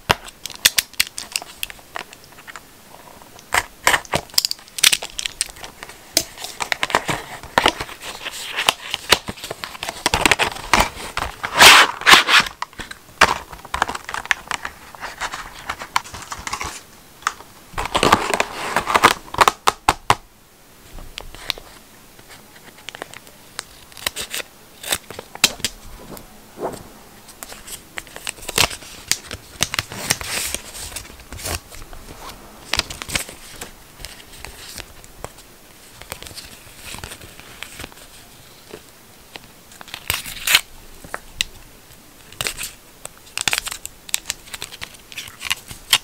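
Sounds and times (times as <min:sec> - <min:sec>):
foil sachet crinkling and tearing: 0:03.5 - 0:12.9, 0:27.5 - 0:31.6, 0:39.8 - 0:40.7
scissors snipping packet: 0:22.9 - 0:25.8.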